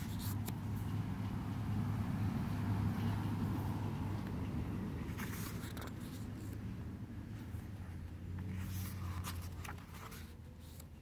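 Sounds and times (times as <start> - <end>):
small clicks of pages: 0.0 - 0.6, 5.1 - 6.6, 8.4 - 10.9
pages rustling: 0.0 - 0.7, 5.1 - 6.6, 8.3 - 11.0.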